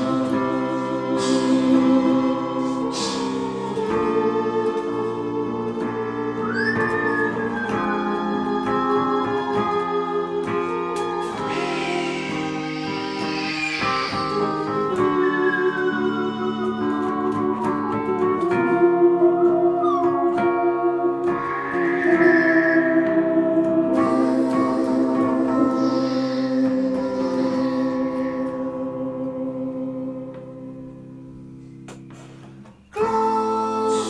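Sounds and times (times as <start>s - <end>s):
organ and keyboard chords: 0.0s - 34.0s
high sliding lead tone: 9.9s - 17.3s, 18.8s - 29.1s.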